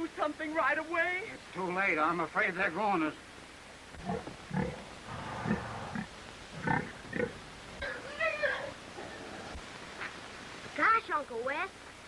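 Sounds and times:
pigs grunting: 0:04.0 - 0:09.6.

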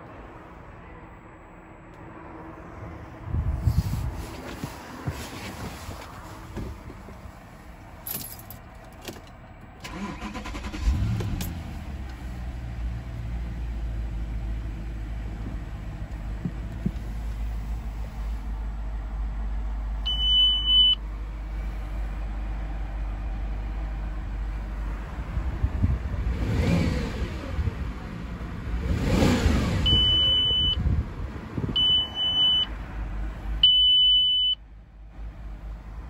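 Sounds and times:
rustling from handling: 0:03.7 - 0:07.4
car engine idling: 0:04.6 - 0:26.2
car warning chime beeps: 0:20.0 - 0:21.0, 0:29.8 - 0:30.8, 0:31.8 - 0:32.7, 0:33.6 - 0:34.6.

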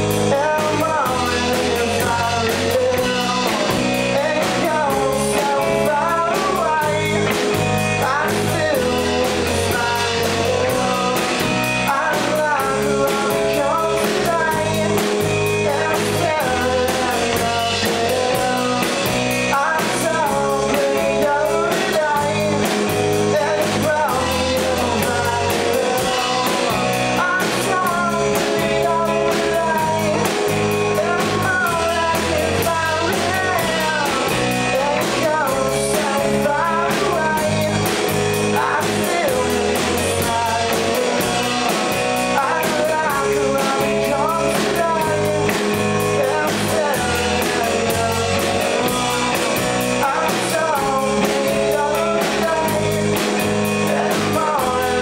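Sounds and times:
bass and drums: 0:00.0 - 0:55.0
electric guitar: 0:00.0 - 0:55.0
person singing: 0:00.0 - 0:55.0.

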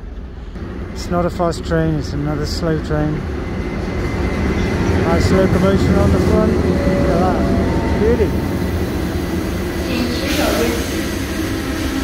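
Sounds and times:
electric train rumbling: 0:00.0 - 0:12.0.

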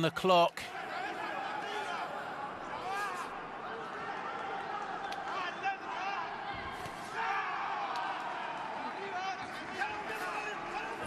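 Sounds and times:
people shouting: 0:00.7 - 0:11.0.

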